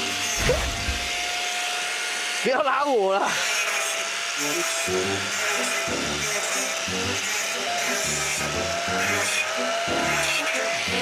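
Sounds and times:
angle grinder cutting wire mesh: 0.0 - 11.0.

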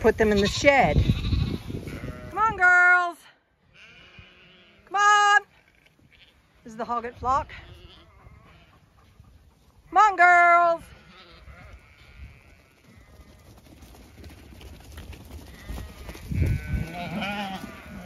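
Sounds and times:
sheep bleating: 0.3 - 2.8, 3.7 - 8.8, 10.6 - 13.4, 15.5 - 18.0.

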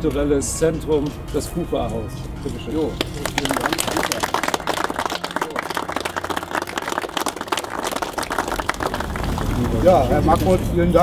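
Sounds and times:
crowd applauding: 2.9 - 10.6.

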